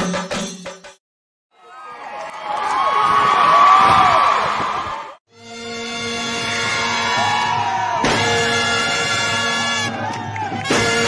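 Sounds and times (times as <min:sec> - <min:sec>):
wind instrument melody: 0:05.3 - 0:11.0
sudden loud hits: 0:08.0 - 0:08.6.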